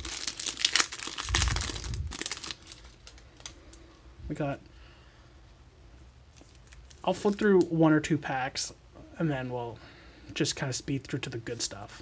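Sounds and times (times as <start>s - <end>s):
plastic wrapper tearing and crinkling: 0.0s - 3.6s, 6.4s - 7.7s.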